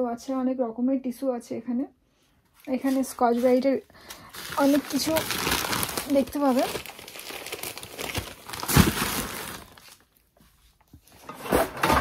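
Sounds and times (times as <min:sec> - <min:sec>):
cardboard and plastic packaging crinkling: 0:02.7 - 0:10.4.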